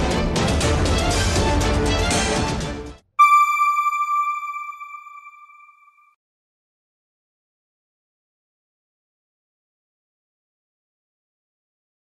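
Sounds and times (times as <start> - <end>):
electronic chime: 3.2 - 6.1.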